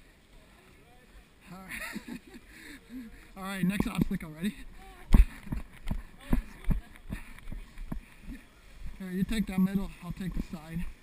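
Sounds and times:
running footsteps on muddy trail: 0:00.0 - 0:11.0.

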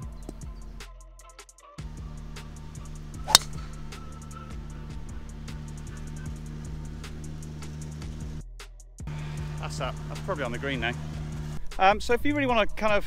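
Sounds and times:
background music: 0:00.0 - 0:13.0
golf club striking ball: 0:03.0 - 0:04.6.

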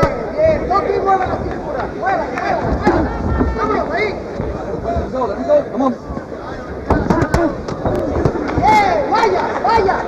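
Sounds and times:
people shouting: 0:08.3 - 0:10.0.

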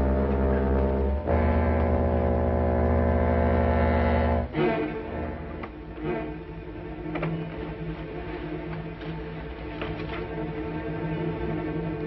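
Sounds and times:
low sustained suspense chord: 0:00.0 - 0:12.0.

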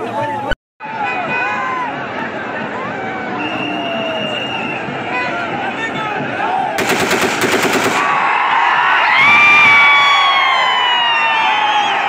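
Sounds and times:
crowd cheering and shouting: 0:00.0 - 0:06.8, 0:08.0 - 0:12.0
rapid gunfire: 0:06.8 - 0:08.2.

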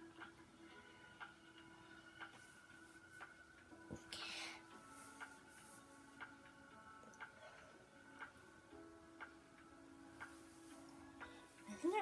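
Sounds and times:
faint regular ticking: 0:00.0 - 0:04.6, 0:05.2 - 0:12.0
faint music: 0:00.0 - 0:12.0.

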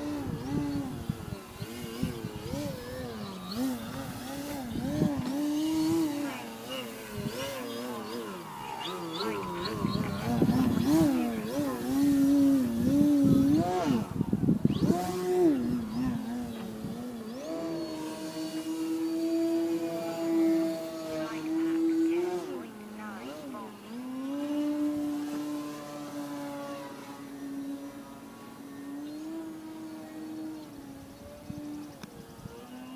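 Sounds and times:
model plane motor and propeller: 0:00.0 - 0:32.9.

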